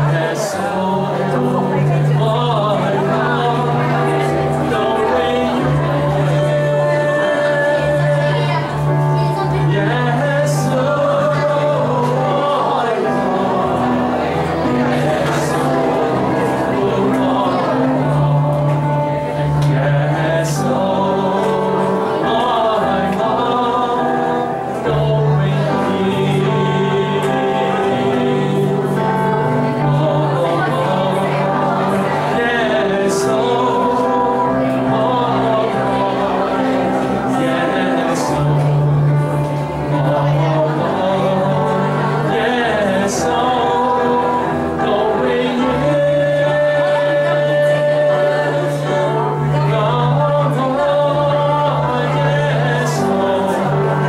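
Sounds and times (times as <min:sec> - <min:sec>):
congregation singing: 0:00.0 - 0:54.0
man's voice leading singing: 0:00.0 - 0:54.0
musical accompaniment: 0:00.0 - 0:54.0.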